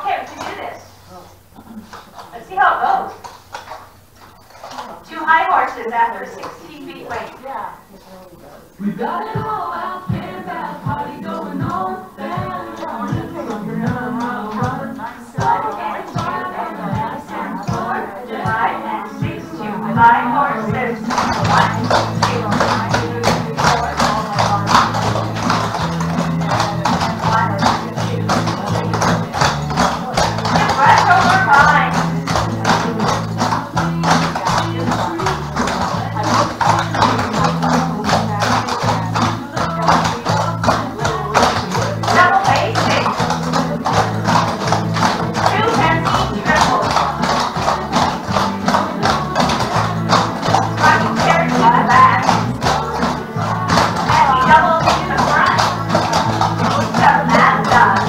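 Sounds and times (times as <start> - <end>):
song with bass beat: 20.7 - 58.0.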